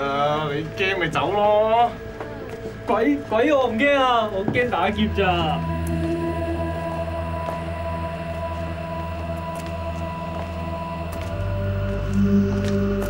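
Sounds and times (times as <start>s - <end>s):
eerie synthesizer drone: 0.0s - 13.0s.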